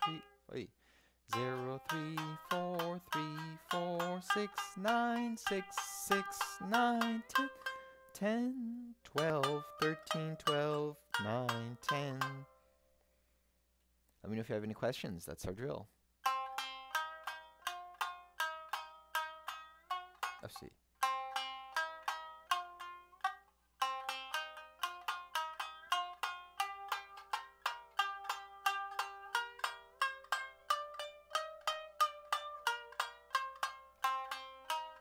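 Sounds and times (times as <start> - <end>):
shamisen plucked notes: 0.0 - 0.7, 1.3 - 12.8, 16.2 - 35.0.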